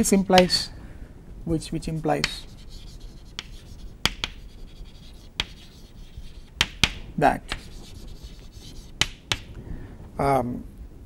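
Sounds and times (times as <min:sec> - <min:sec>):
chalk tapping on chalkboard: 0:00.3 - 0:00.6, 0:02.2 - 0:09.5
chalk scratching: 0:02.2 - 0:09.5.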